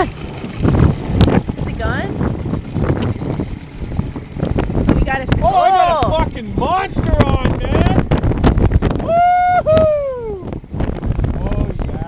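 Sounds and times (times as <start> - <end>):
outboard motor running: 0.0 - 12.0
wind buffeting microphone: 0.0 - 12.0.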